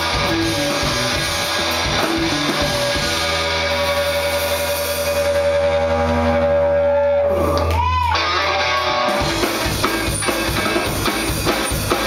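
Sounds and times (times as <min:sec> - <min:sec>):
rock band sustained chord: 0:00.0 - 0:07.6, 0:08.2 - 0:12.0.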